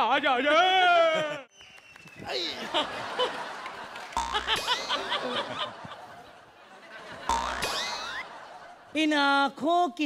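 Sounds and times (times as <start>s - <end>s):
cartoon boing sound effect: 4.2s - 4.9s, 7.3s - 8.2s.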